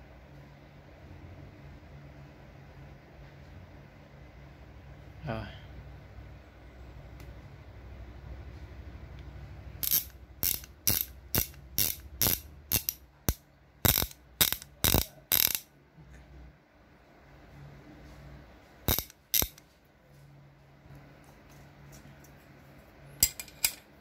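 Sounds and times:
ratchet wrench clicking: 9.8 - 15.7, 18.9 - 19.6.

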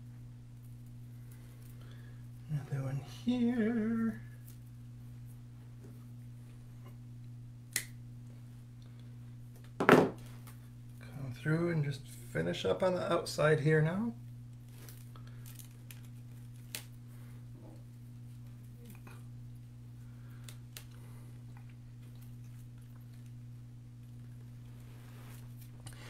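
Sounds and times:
low electrical hum: 0.0 - 26.0
faint ticks and crackles of wire: 14.0 - 26.0.

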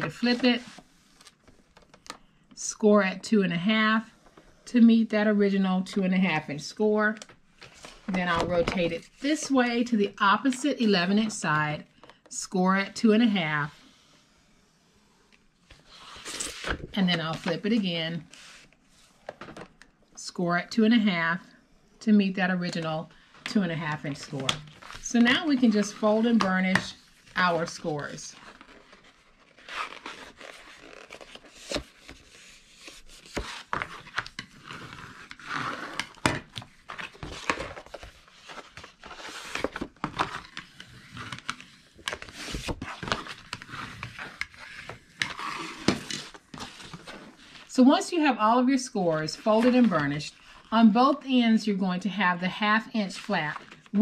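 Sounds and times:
paper crinkling and rustling: 24.0 - 47.7.

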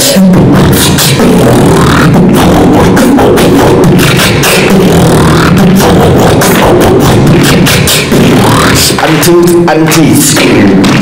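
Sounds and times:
beatboxing into microphone: 0.0 - 11.0.

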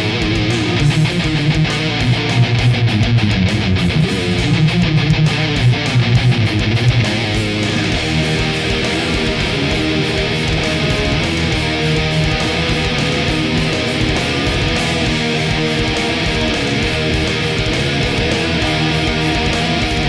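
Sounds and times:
distorted electric guitar riff: 0.0 - 20.0.

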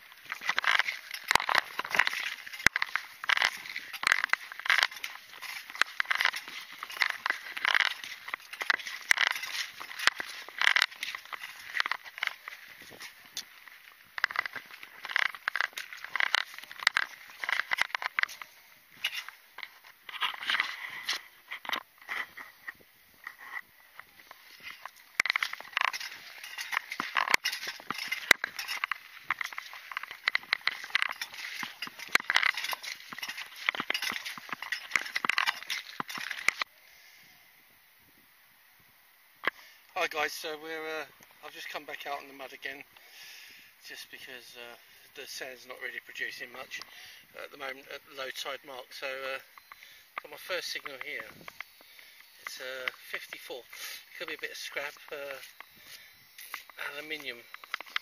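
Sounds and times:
footsteps crunching on shingle: 0.0 - 36.7, 43.9 - 58.0.

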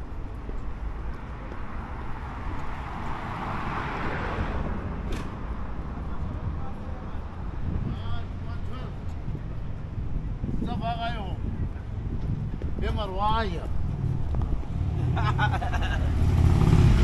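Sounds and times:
traffic rumble: 0.0 - 17.0
vehicle passing: 1.8 - 6.5, 13.5 - 17.0.

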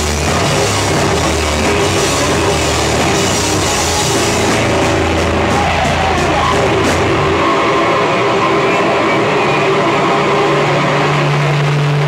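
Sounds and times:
distorted electric guitar drone: 0.0 - 12.0.

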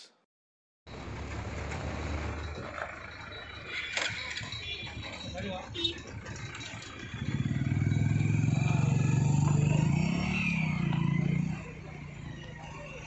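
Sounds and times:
vehicle engine passing by: 6.2 - 13.0.

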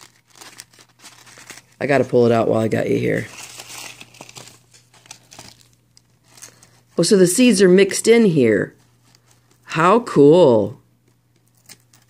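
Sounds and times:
paper envelope crinkling: 0.0 - 7.1, 8.7 - 9.7, 11.0 - 12.0.

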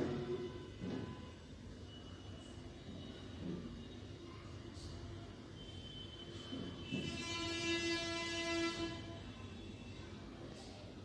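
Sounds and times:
steady horn-like tone: 6.8 - 9.2.

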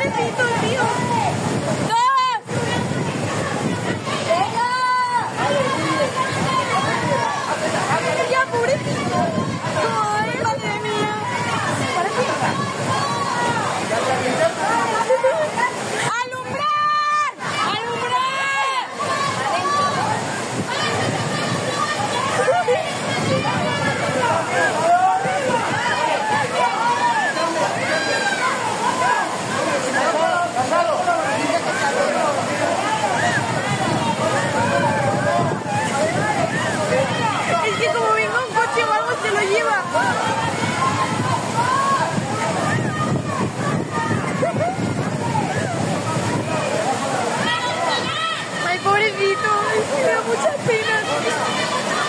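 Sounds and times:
people shouting: 0.0 - 52.0
rushing floodwater: 0.0 - 52.0.

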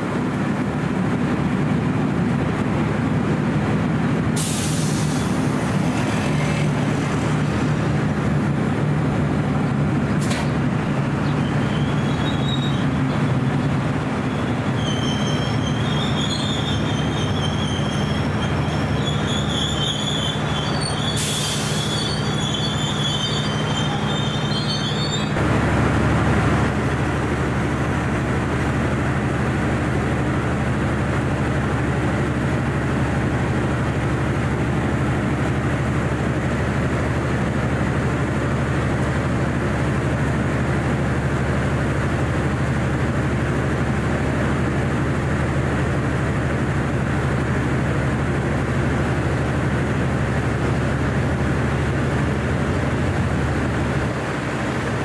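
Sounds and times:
train rumble: 0.0 - 55.0
short hiss: 4.4 - 5.4
wheel squeal: 11.2 - 13.4, 14.2 - 25.4.

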